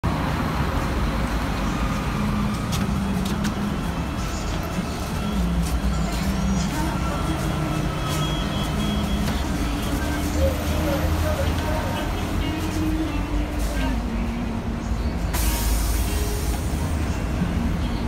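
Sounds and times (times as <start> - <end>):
bus diesel engine idling: 0.0 - 18.0.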